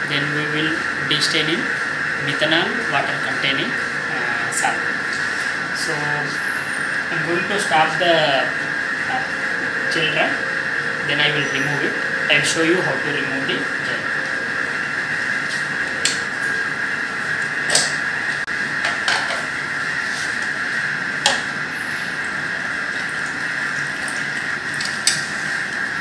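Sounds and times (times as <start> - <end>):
liquid sounds: 2.9 - 26.0.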